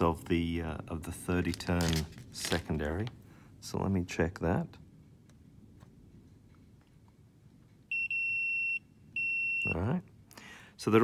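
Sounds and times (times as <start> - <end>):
multimeter continuity beep: 7.9 - 9.9.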